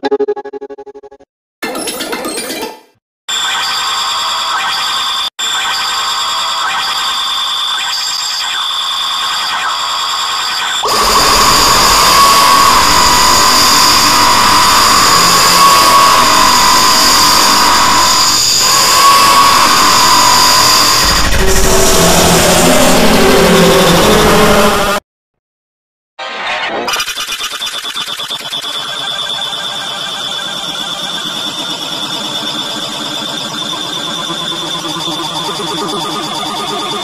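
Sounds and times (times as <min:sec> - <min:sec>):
noisy sound with wavering tone: 0:27.8 - 0:37.0.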